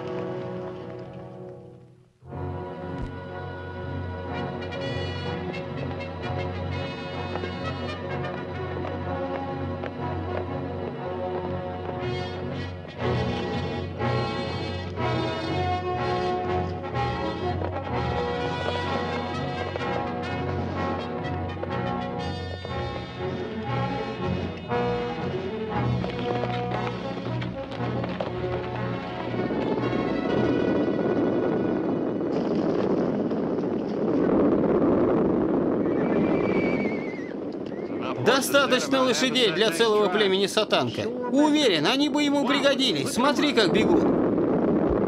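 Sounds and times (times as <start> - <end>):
horses galloping: 0.0 - 1.8, 17.4 - 44.2
orchestral western film music: 0.0 - 34.1, 35.8 - 44.1.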